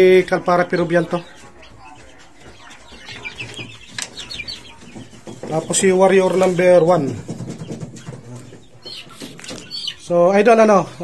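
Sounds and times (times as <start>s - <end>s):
chickens chirping: 0.0s - 11.0s.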